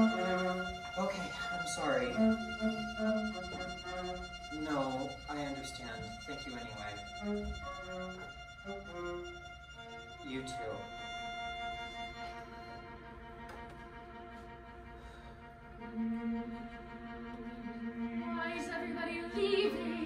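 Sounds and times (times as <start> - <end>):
bowed strings playing held notes: 0.0 - 20.0.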